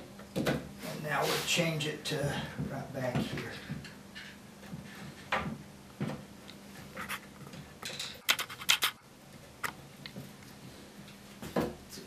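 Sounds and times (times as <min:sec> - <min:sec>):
brace and bit scratching wood: 0:08.2 - 0:09.0.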